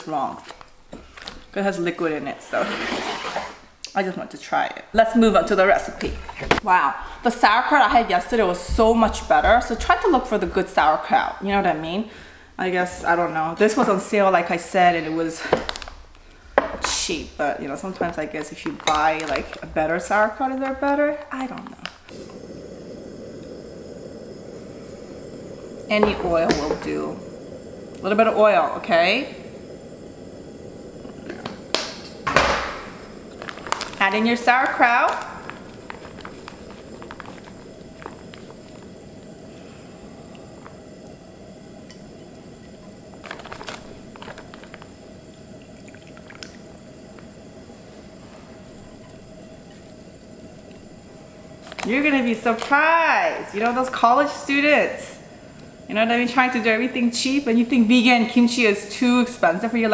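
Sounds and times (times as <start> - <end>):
food sizzling in oil: 13.0 - 59.9
steady low rumbling: 22.1 - 45.3.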